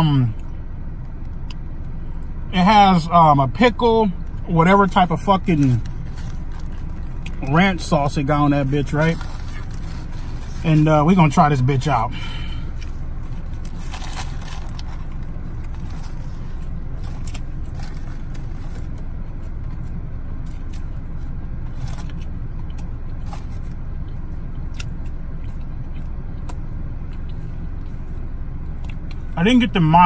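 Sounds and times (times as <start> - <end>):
low rumble in car cabin: 0.0 - 30.0
chewing crispy food: 4.3 - 11.4, 12.2 - 29.4
paper wrapper crinkling: 5.6 - 10.9, 12.8 - 19.5.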